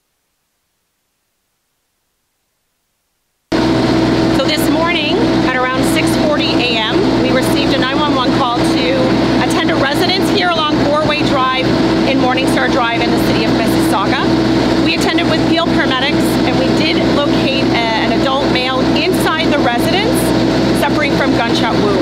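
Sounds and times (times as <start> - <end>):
woman speaking: 4.4 - 22.0.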